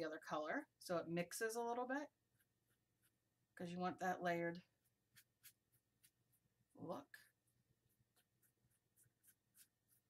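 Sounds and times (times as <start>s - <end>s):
paintbrush swishing on paper: 2.1s - 3.4s, 4.5s - 10.0s.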